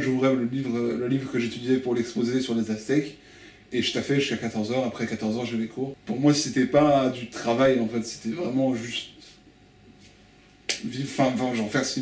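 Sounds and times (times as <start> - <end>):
person speaking: 0.0 - 9.4, 10.7 - 12.0.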